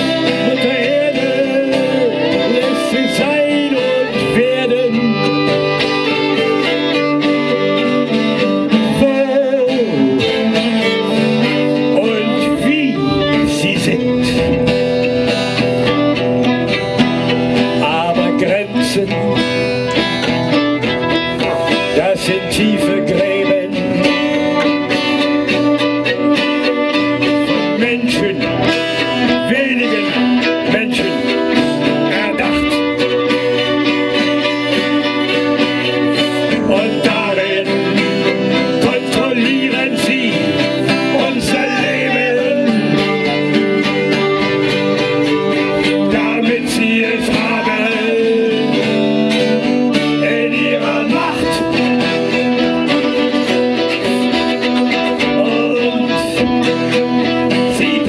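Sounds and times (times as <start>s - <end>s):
acoustic guitar accompaniment: 0.0s - 58.0s
fiddles playing folk melody: 0.0s - 58.0s.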